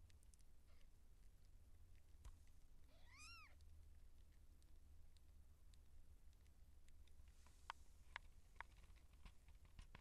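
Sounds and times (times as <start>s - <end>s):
kitten mewing: 2.9s - 3.6s.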